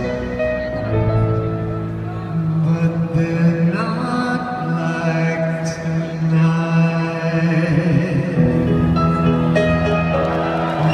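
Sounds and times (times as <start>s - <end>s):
man singing long notes: 1.9s - 8.7s.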